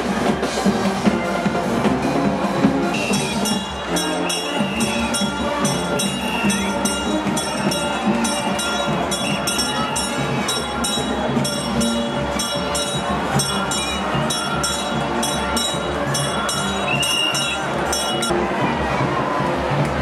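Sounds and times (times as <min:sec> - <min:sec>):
large crowd cheering: 0:00.0 - 0:20.0
music with steady beat: 0:00.0 - 0:20.0.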